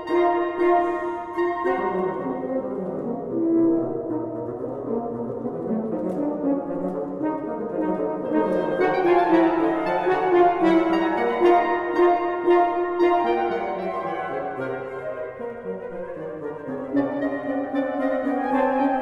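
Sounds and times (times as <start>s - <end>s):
wind quartet chamber music: 0.0s - 19.0s.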